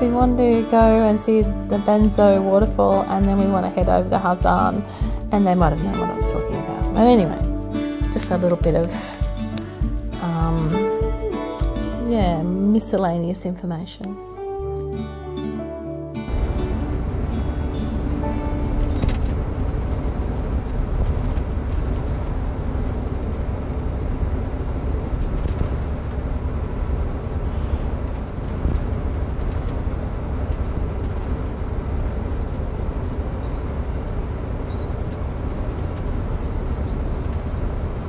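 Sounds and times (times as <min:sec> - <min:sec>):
bus engine and tyres rumbling: 0:16.3 - 0:38.0.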